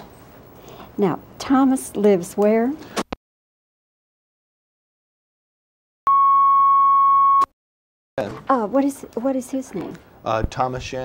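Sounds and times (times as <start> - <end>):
electronic test tone: 6.1 - 7.5.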